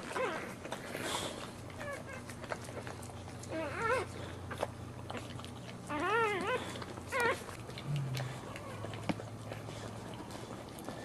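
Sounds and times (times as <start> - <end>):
dog licking wet clicks: 4.5 - 11.0
puppy crying in high squeals: 5.9 - 7.4.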